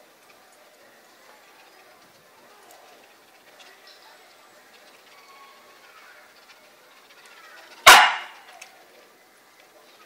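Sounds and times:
dog barking: 7.8 - 8.5.

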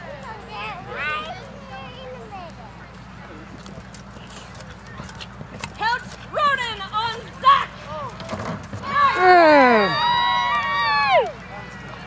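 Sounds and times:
faint voices: 0.0 - 12.0
horse hooves on dirt: 2.9 - 9.2.

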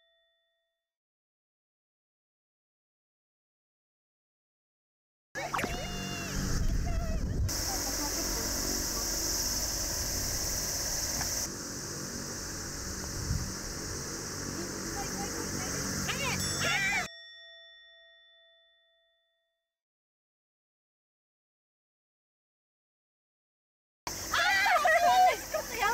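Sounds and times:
bell-like chime: 0.0 - 0.8, 16.2 - 19.6
steady high outdoor hiss: 5.6 - 17.1, 24.1 - 25.9
excited voices: 14.6 - 17.1, 24.1 - 25.9.

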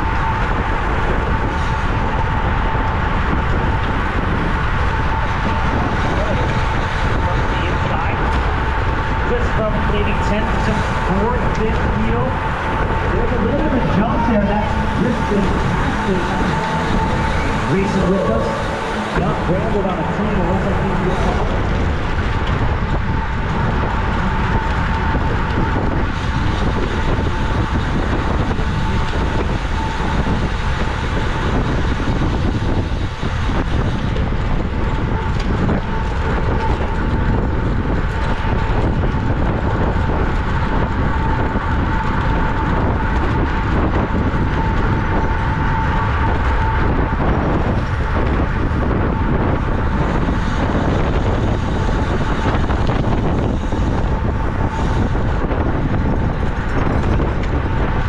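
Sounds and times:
bike tyres on asphalt: 0.0 - 58.0
wind rushing over microphone: 0.0 - 58.0.

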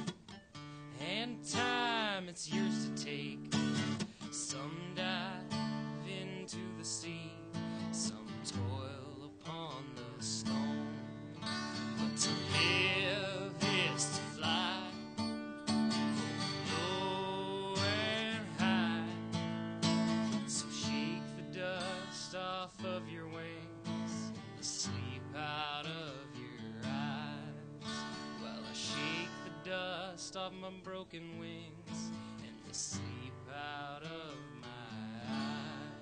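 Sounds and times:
acoustic guitar strumming: 0.0 - 36.0.

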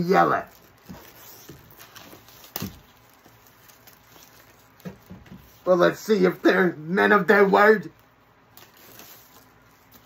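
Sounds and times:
plastic wrapping rustling: 0.0 - 6.5, 7.8 - 10.0.

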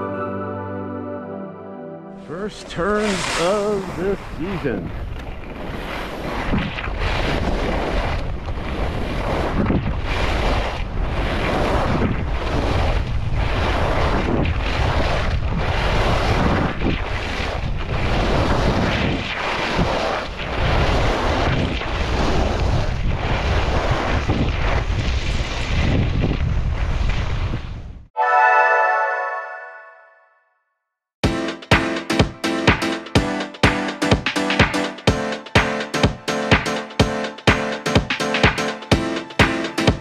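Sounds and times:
skis carving on hard snow: 2.4 - 4.6, 5.4 - 26.2
wind rush on microphone: 3.8 - 28.1.

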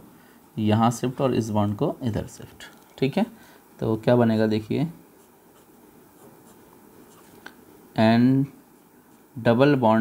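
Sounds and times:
pen scratching on paper: 5.2 - 7.4.

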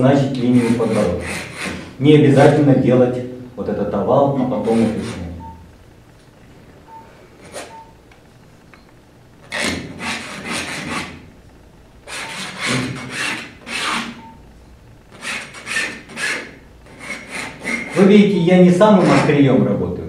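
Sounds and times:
palette knife scraping canvas: 0.4 - 1.9, 4.6 - 5.3, 9.5 - 11.2, 12.1 - 14.2, 15.2 - 18.1, 19.0 - 19.3.

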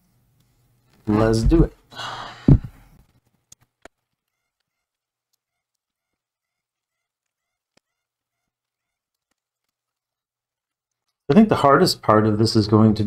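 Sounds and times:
faint clicks: 8.6 - 11.2.

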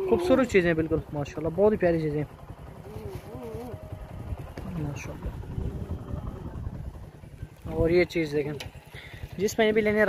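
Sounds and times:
wind buffeting microphone: 0.0 - 10.0
faint voices: 2.7 - 8.2.

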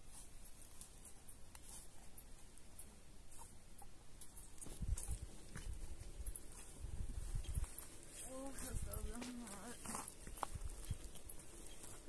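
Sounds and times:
person speaking: 8.2 - 10.2.

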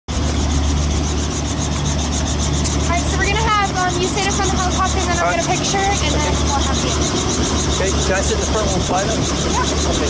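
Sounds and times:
helicopter engine and rotor: 0.1 - 10.0.

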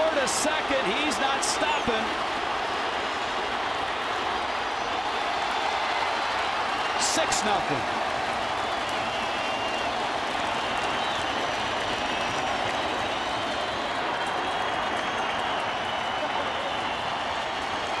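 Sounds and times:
crowd cheering and applauding: 0.0 - 18.0.

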